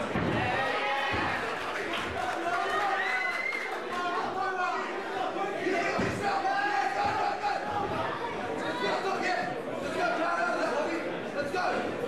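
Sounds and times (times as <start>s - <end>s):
crowd shouting: 0.0s - 9.1s.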